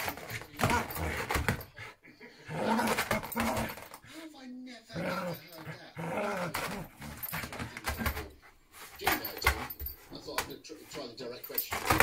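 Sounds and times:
dog growling: 0.0s - 4.2s, 4.8s - 9.9s.

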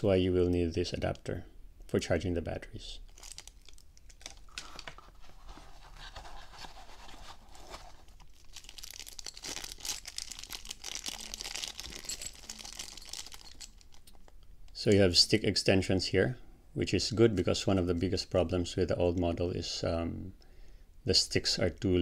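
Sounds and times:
plastic bags crinkling: 3.1s - 14.3s.

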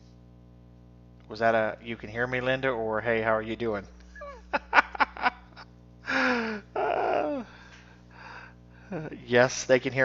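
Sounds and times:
man laughing breathily: 4.1s - 9.2s.

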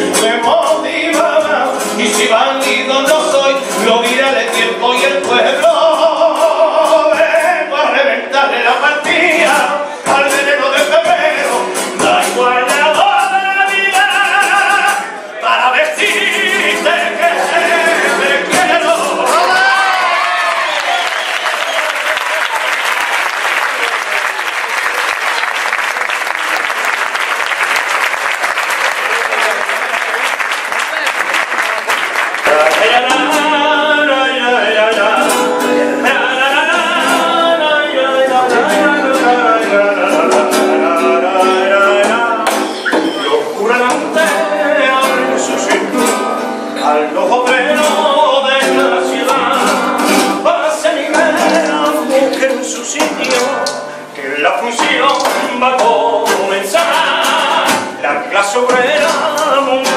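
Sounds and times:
strummed guitar: 0.0s - 20.1s, 32.4s - 59.9s
group of voices singing: 0.0s - 20.6s, 32.4s - 59.9s
audience applauding and cheering: 19.2s - 33.1s.

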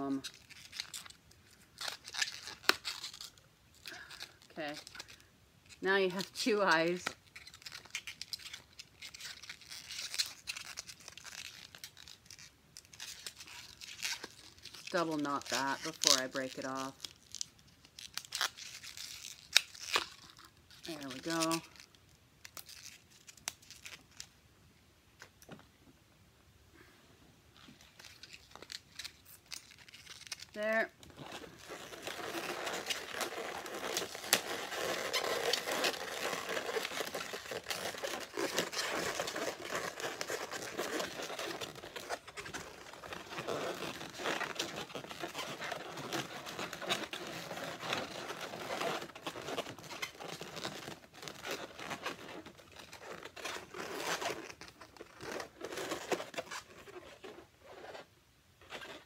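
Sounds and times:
balloons rubbing and squeaking: 0.0s - 24.3s, 27.5s - 59.0s.

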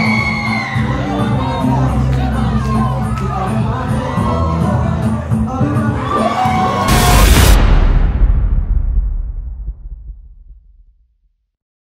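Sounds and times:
deep bass rumble: 6.8s - 11.2s.

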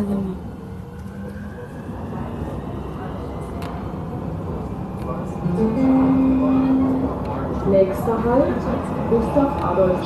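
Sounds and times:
train low rumble: 0.0s - 10.0s.

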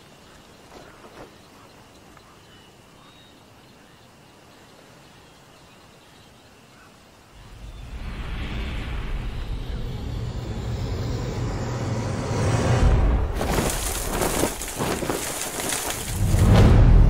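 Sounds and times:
low rumbling noise: 7.4s - 17.0s.

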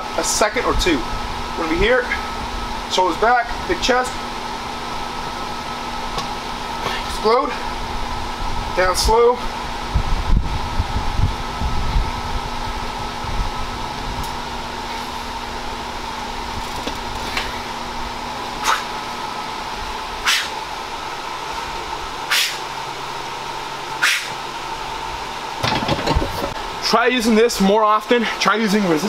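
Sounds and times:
fan whirring: 0.0s - 29.0s.

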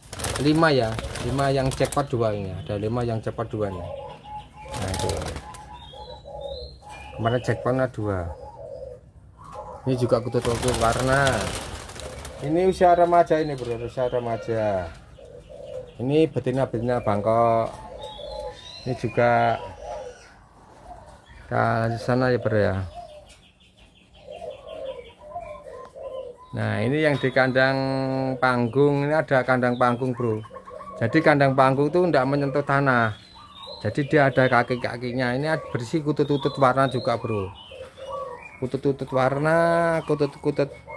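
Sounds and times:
doves cooing: 0.0s - 40.9s
wing flutter: 10.4s - 12.4s.

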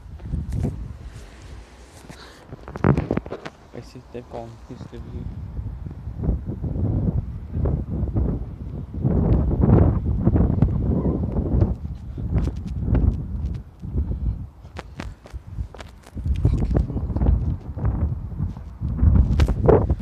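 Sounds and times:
wind on phone microphone: 0.0s - 20.0s.

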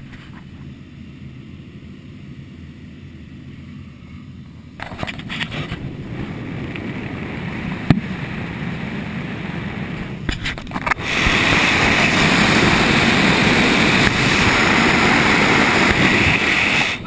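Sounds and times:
loud wind rush with hiss: 0.0s - 17.0s
airflow rushing: 0.9s - 17.0s.

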